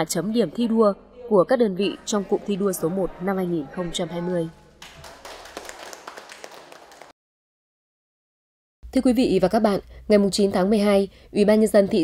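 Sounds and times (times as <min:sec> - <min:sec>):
small group applauding: 0:04.8 - 0:07.2.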